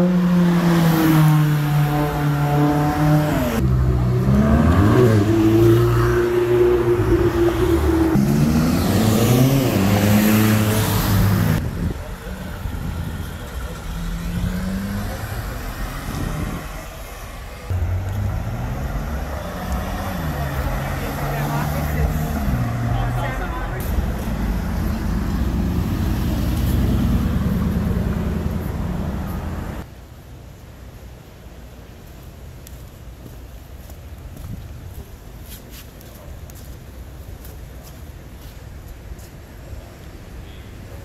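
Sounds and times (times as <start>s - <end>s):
sports car engines accelerating: 0.0s - 29.9s.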